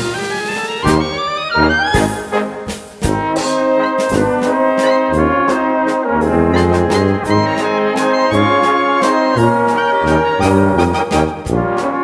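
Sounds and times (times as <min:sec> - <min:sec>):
brass band playing a waltz: 0:00.0 - 0:12.0.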